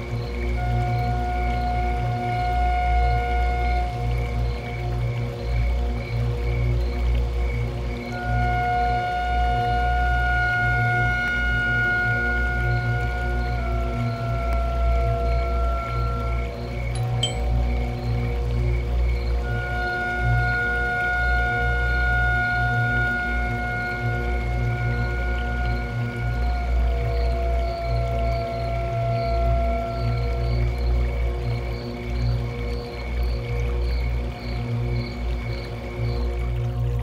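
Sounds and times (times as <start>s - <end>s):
soft repeating high note: 17.0s - 18.3s.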